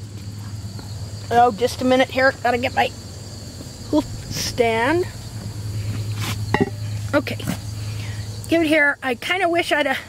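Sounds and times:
low hum: 0:00.0 - 0:08.6
crickets chirring: 0:00.0 - 0:10.0.

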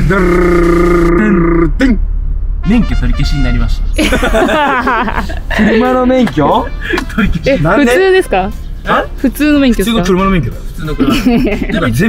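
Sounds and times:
man humming held pitch: 0:00.0 - 0:01.8.

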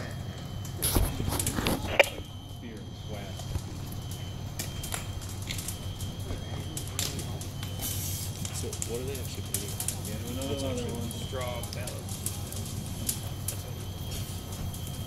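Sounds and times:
steady low hum: 0:00.0 - 0:15.0
faint indistinct voices: 0:06.0 - 0:14.6.

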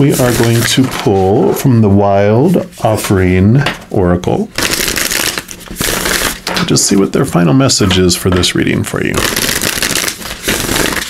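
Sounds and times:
cards being shuffled: 0:04.6 - 0:06.8, 0:09.2 - 0:11.0.

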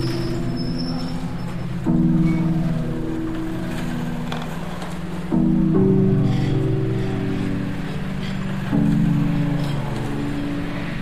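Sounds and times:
synthesizer chord: 0:00.0 - 0:11.0.

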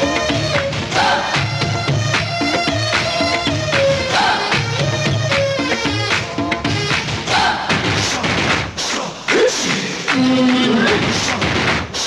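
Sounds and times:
heavy drum beats: 0:00.0 - 0:12.0.

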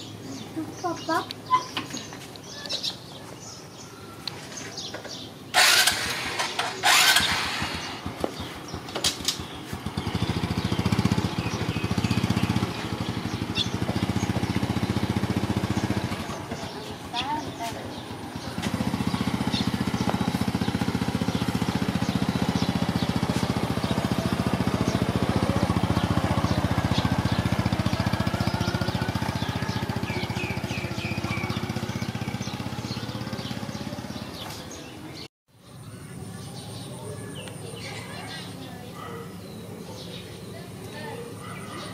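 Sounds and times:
motorbike engine pulling away: 0:00.0 - 0:41.9
loud sharp noises: 0:05.5 - 0:11.2.

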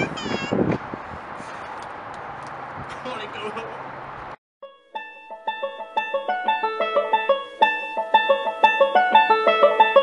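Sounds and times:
outdoor background noise: 0:00.0 - 0:10.0
plucked-string music: 0:04.6 - 0:10.0.

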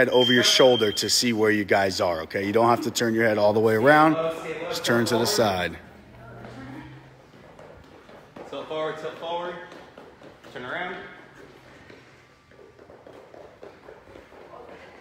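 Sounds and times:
coaching voices: 0:00.0 - 0:07.2
faint footsteps: 0:05.8 - 0:15.0.

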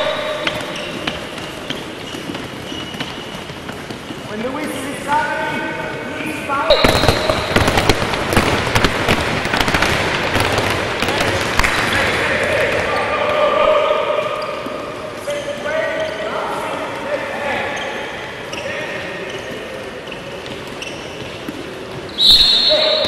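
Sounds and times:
balls bouncing on hall floor: 0:00.0 - 0:23.0.

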